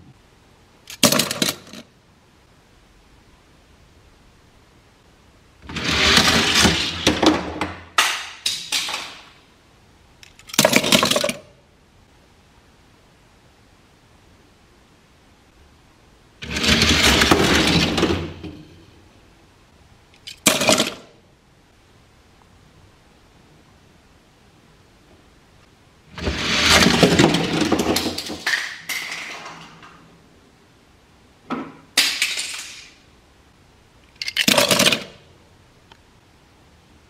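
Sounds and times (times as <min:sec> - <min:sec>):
toy cars clattering knocks: 0:00.9 - 0:01.9, 0:05.7 - 0:09.3, 0:10.3 - 0:11.5, 0:20.2 - 0:21.1, 0:26.2 - 0:30.0, 0:32.0 - 0:33.0, 0:34.1 - 0:35.2
toy cars rattling down plastic track: 0:00.9 - 0:01.9, 0:05.7 - 0:07.3, 0:10.3 - 0:11.5, 0:16.4 - 0:18.5, 0:20.2 - 0:21.1, 0:26.2 - 0:29.9, 0:32.0 - 0:33.0, 0:34.1 - 0:35.2.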